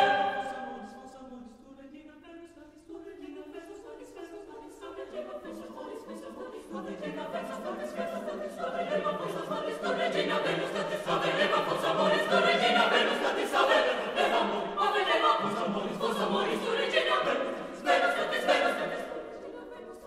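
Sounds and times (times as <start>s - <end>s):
choir singing a cappella: 0.0s - 20.0s.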